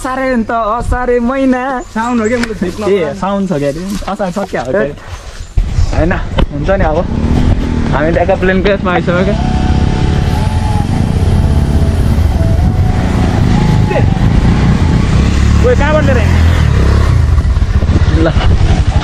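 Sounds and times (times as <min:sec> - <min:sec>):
voices: 0:00.0 - 0:05.1, 0:07.9 - 0:16.6
heavy low rumble: 0:05.6 - 0:19.0
motorcycle engine running: 0:07.0 - 0:19.0.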